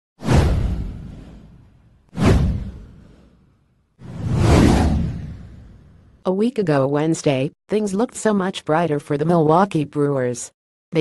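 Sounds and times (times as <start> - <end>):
whoosh sound effects: 0.2 - 6.1.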